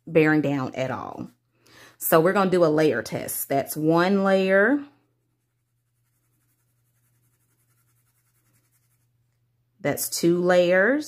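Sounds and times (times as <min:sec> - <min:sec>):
pencil scratching on cardstock: 0:05.2 - 0:09.1.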